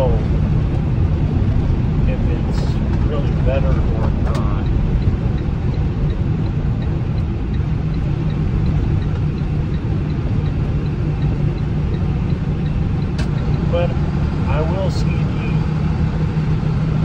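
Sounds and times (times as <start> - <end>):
car engine and tyres rumbling: 0.0 - 17.0
faint regular ticking: 2.4 - 15.2.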